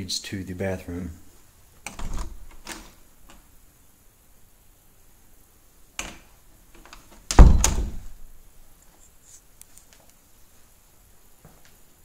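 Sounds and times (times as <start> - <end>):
door click: 1.8 - 3.4, 6.0 - 8.2.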